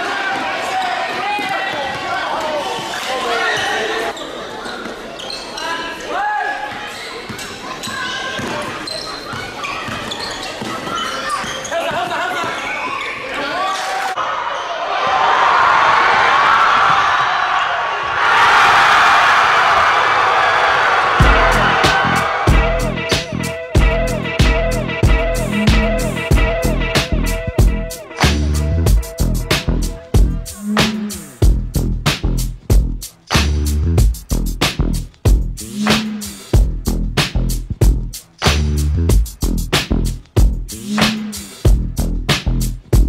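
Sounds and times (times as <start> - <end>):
crowd cheering: 0.0 - 4.8, 7.9 - 27.4
players shouting: 9.4 - 27.2
hip-hop instrumental with heavy bass: 21.2 - 43.0.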